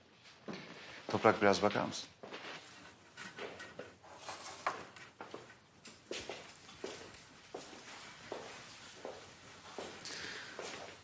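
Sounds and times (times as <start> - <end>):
soft footsteps on floor: 0.1 - 4.0, 5.1 - 11.0.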